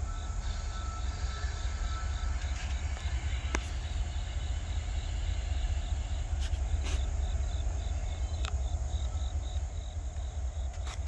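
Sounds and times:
insect chirping: 0.0 - 11.0
steady low rumble: 0.0 - 11.0.

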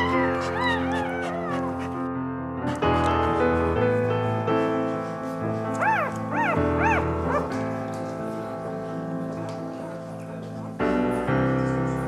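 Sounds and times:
puppy crying: 0.0 - 2.1, 5.8 - 7.5
background piano music: 0.0 - 12.0.

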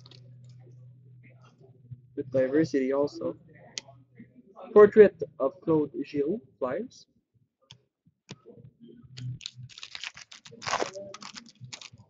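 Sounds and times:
cards clicking and snapping: 9.4 - 12.0.

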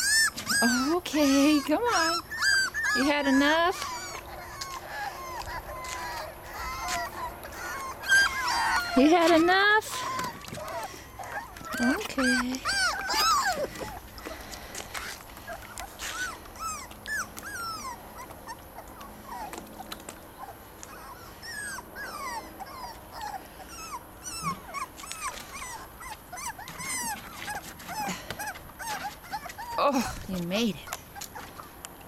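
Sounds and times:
puppies whimpering and yipping: 0.0 - 32.0.

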